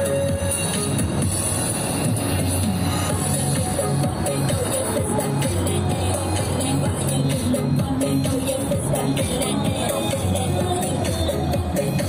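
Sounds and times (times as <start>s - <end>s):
electronic backing-track music: 0.0s - 12.0s.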